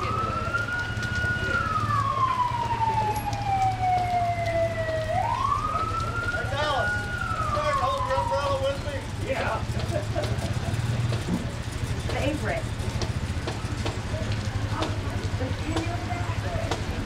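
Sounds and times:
police siren wailing: 0:00.0 - 0:09.8.

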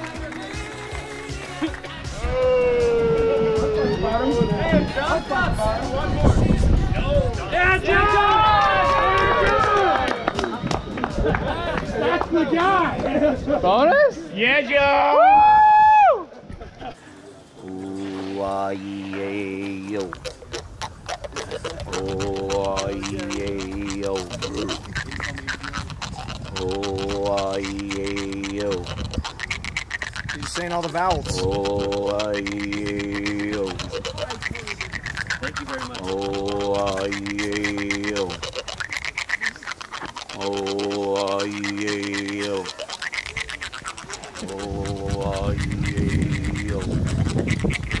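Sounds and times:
rough noise: 0:17.0 - 0:48.0
man buzzing through a kazoo: 0:17.6 - 0:48.0
jaw harp plucked: 0:17.8 - 0:48.0.

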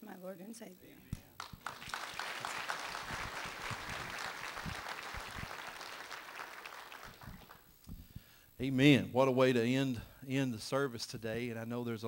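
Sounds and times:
congregation applauding: 0:01.4 - 0:07.7.

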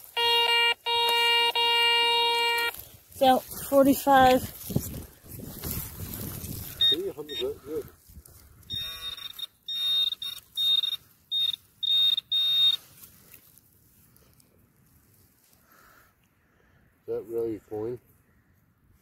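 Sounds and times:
metal detector short buzzy beeps: 0:00.1 - 0:02.7, 0:06.7 - 0:07.6, 0:08.7 - 0:12.8.

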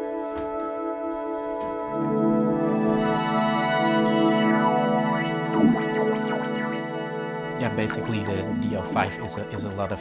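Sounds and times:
synthesizer chord with filter sweep: 0:00.4 - 0:09.9.

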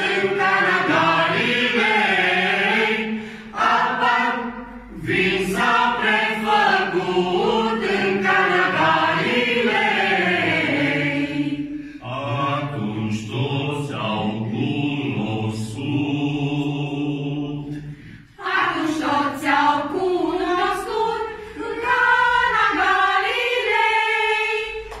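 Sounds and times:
group of men and women singing: 0:00.0 - 0:25.0.

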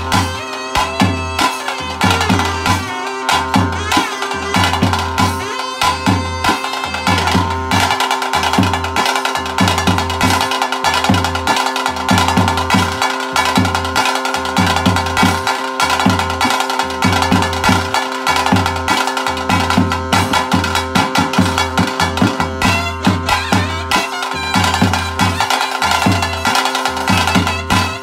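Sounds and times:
drums beating fast rhythm: 0:00.0 - 0:28.0
flute sustained notes: 0:00.0 - 0:28.0.

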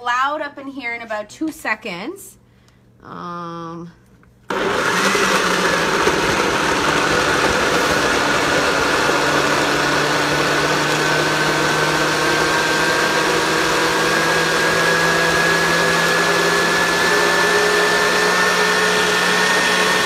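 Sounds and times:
blender motor whine: 0:04.5 - 0:20.0.

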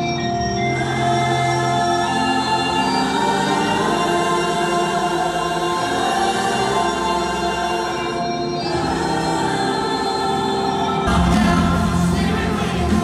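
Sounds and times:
crowd singing along: 0:00.0 - 0:13.0
worship music over sound system: 0:00.0 - 0:13.0.

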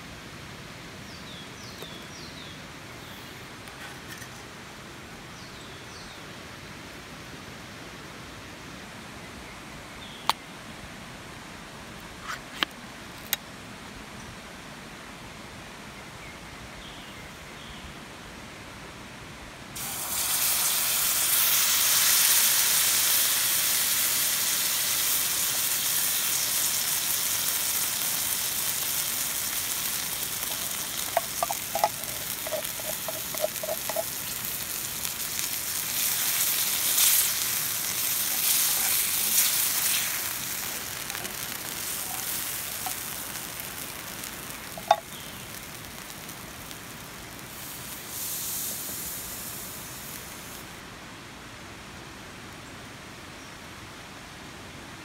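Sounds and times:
beans sizzling in a skillet: 0:19.8 - 0:50.8
beans pouring from a can: 0:30.0 - 0:34.9
wooden spoon stirring: 0:30.5 - 0:34.2, 0:41.0 - 0:43.2, 0:44.7 - 0:45.0
spoon tapping on a pan: 0:31.1 - 0:34.1, 0:44.7 - 0:45.1.

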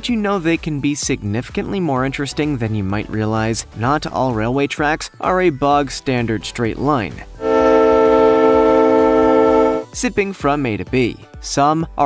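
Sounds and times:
locomotive air horn: 0:07.4 - 0:09.9.

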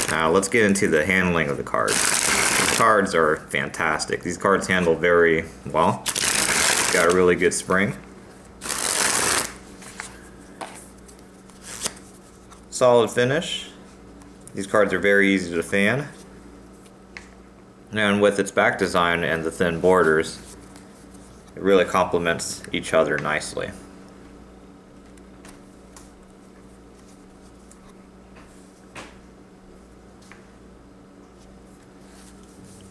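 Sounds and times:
steady low hum: 0:00.0 - 0:32.9
playing cards riffling: 0:01.9 - 0:02.9, 0:06.0 - 0:07.2, 0:08.6 - 0:12.6.

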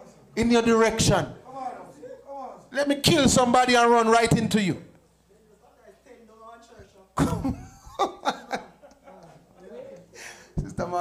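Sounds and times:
man laughing: 0:07.2 - 0:09.4.

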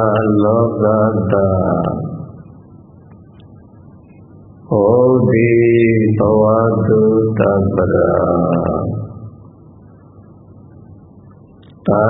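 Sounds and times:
man chanting: 0:00.0 - 0:02.5, 0:04.6 - 0:09.4.

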